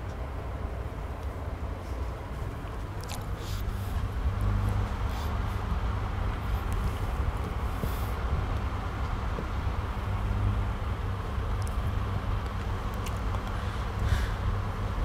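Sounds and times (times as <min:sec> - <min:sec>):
low background rumble with hiss: 0:00.0 - 0:15.0.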